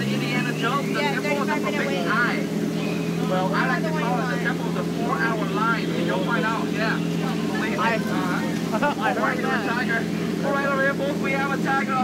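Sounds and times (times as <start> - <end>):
boat motor humming: 0.0 - 12.0
man talking: 3.2 - 12.0.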